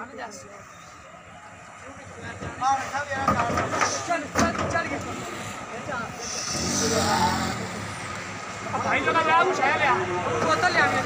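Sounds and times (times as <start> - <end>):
vehicle engine revving: 6.2 - 8.5.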